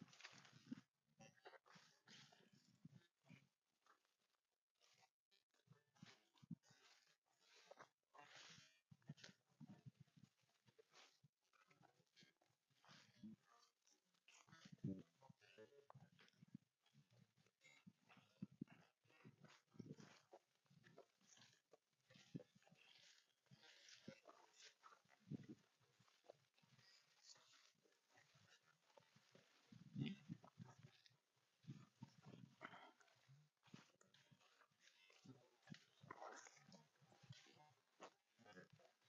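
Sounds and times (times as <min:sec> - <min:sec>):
footsteps in tall grass: 0:22.2 - 0:31.0.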